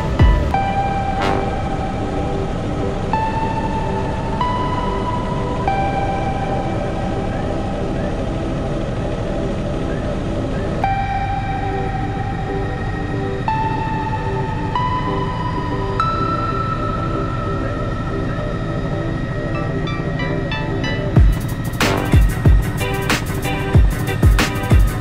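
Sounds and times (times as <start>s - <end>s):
helicopter cabin drone: 0.0s - 25.0s
synthesizer background music: 0.0s - 25.0s.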